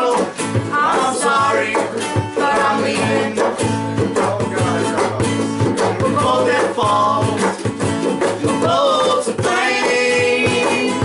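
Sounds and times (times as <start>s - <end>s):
voices singing along: 0.0s - 7.6s, 8.3s - 11.0s
acoustic string band playing: 0.0s - 11.0s
drum beat: 0.0s - 11.0s.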